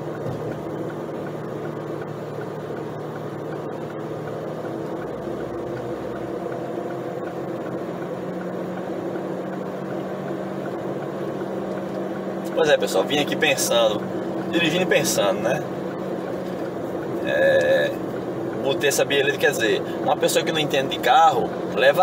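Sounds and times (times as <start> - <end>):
car engine hum: 0.0 - 22.0.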